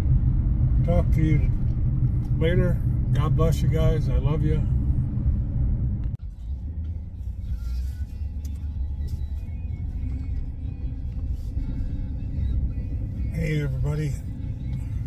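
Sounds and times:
truck engine and road noise: 0.0 - 15.0.

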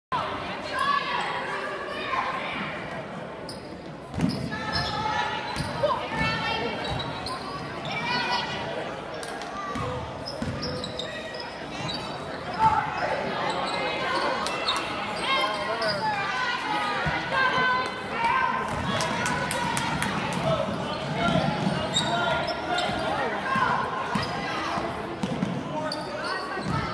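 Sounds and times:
voices of players and spectators: 0.1 - 26.9.

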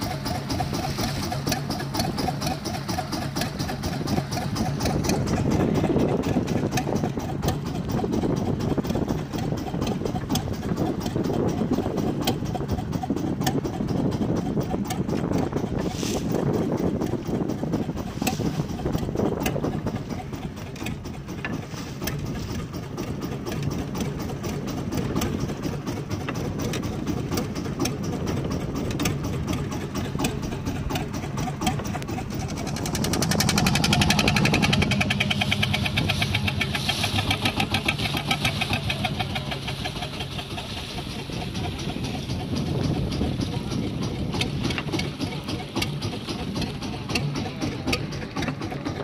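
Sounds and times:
boat engine running: 0.0 - 49.0
water splashing along hull: 0.0 - 49.0.

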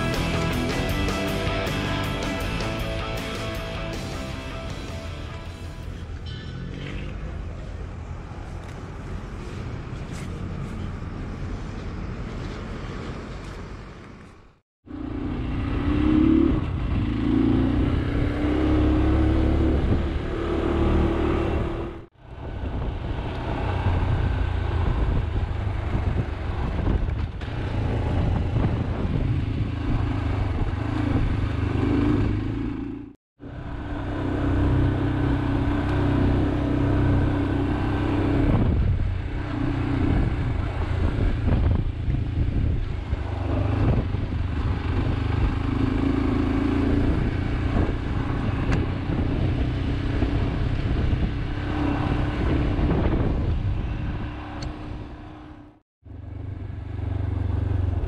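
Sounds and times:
road and wind noise: 0.0 - 58.0
motorcycle engine revving: 14.8 - 58.0.

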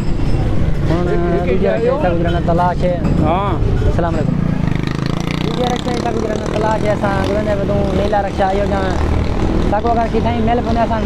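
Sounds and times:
street traffic rumble: 0.0 - 11.0
man talking: 0.9 - 4.4, 5.4 - 9.0, 9.7 - 11.0.

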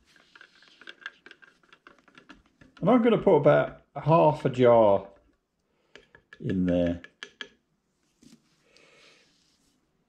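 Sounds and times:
stir stick scraping in metal can: 0.0 - 3.8.

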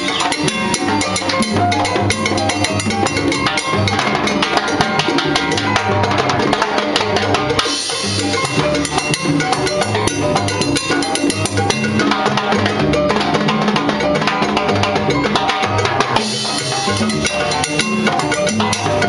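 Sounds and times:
salsa band with bass line: 0.0 - 19.0.

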